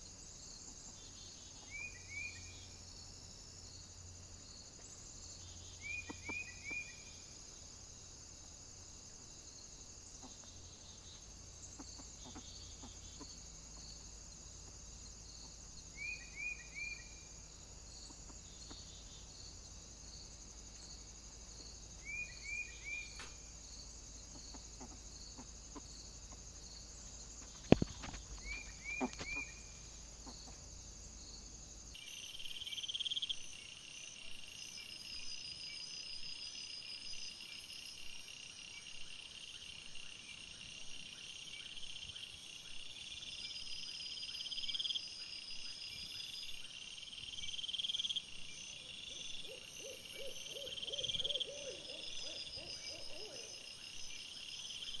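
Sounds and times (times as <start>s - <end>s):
insects chirping and trilling: 0.0s - 55.0s
lower evenly spaced calls: 5.4s - 7.4s, 15.4s - 19.6s, 21.8s - 30.8s, 47.1s - 55.0s.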